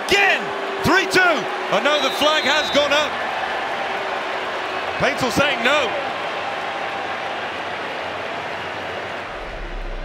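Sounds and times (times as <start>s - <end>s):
stadium crowd voices: 0.0s - 10.0s.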